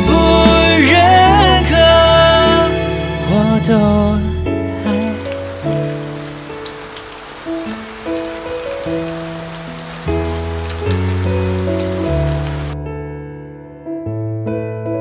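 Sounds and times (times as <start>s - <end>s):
slow instrumental music: 0.0s - 15.0s
steady rain falling: 4.8s - 12.8s.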